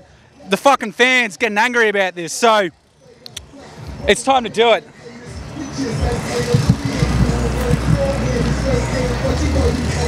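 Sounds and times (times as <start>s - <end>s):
faint distant voices: 0.0s - 10.0s
music: 3.0s - 10.0s
loud low rumble: 6.2s - 9.2s.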